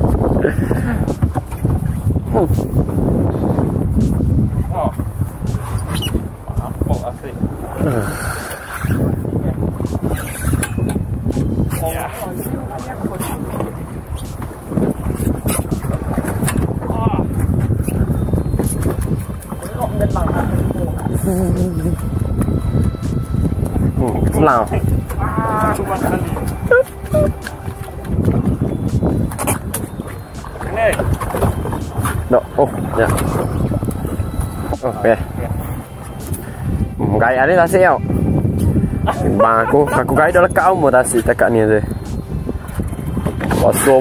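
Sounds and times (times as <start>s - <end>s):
water washing against hull: 0.0s - 44.0s
wind buffeting microphone: 0.0s - 44.0s.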